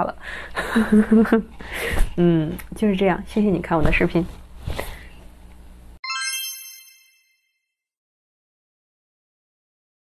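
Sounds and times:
bright chime: 0:06.0 - 0:07.5.

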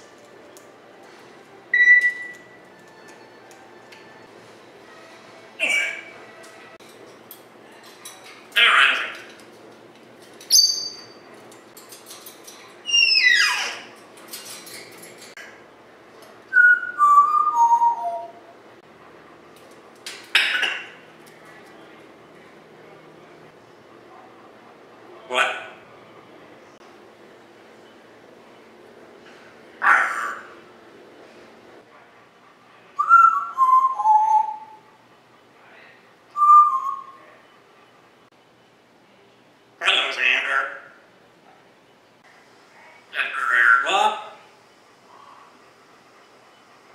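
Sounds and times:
parrot whistling: 0:01.7 - 0:02.5, 0:12.8 - 0:13.8, 0:16.5 - 0:18.4, 0:33.0 - 0:34.9, 0:36.4 - 0:37.2.

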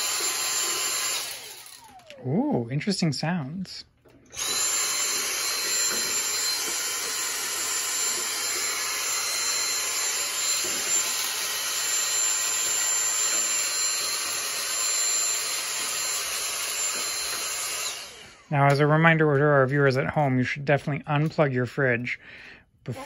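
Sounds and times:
vacuum cleaner whining: 0:00.0 - 0:03.5, 0:04.1 - 0:19.8.

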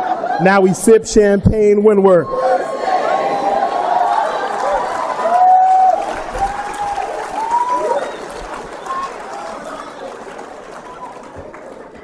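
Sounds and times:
audience applauding and cheering: 0:02.4 - 0:12.0
whoops from audience: 0:03.4 - 0:09.9.

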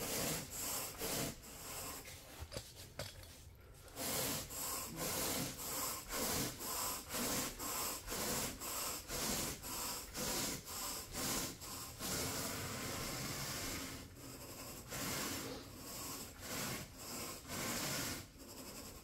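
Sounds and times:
rake rubbing through carpet: 0:00.0 - 0:19.0.

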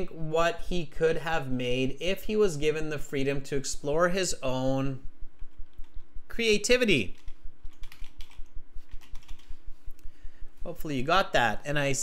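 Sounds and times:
typing on computer keyboard: 0:07.1 - 0:09.5.

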